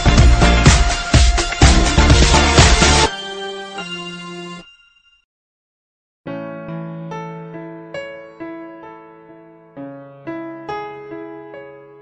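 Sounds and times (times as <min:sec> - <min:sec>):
held electronic chord: 0:00.0 - 0:04.8.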